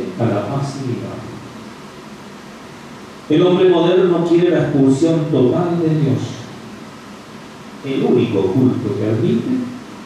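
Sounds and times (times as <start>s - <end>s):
man speaking: 0.0s - 1.4s, 3.3s - 6.5s, 7.8s - 9.8s
steady background hiss: 0.0s - 10.0s.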